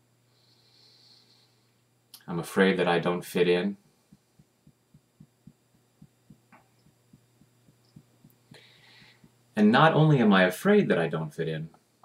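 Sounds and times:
fingertips tapping on chest: 4.0s - 9.4s.

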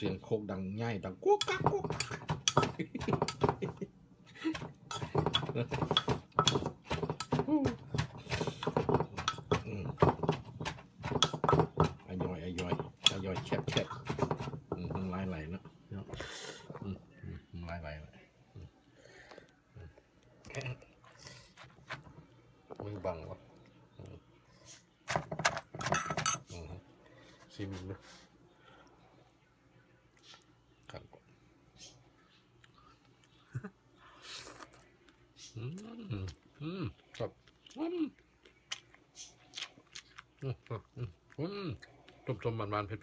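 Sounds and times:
wooden pestle knocking in mortar: 1.4s - 3.8s, 4.5s - 15.2s.

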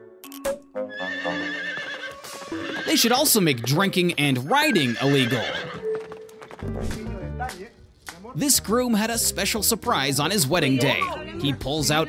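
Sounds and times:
horse whinnying: 0.9s - 3.3s, 4.5s - 6.0s.

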